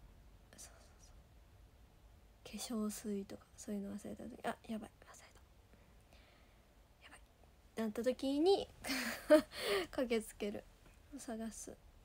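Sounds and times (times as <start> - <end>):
faint whispering: 0.5 - 1.2, 2.4 - 5.5, 7.0 - 7.3.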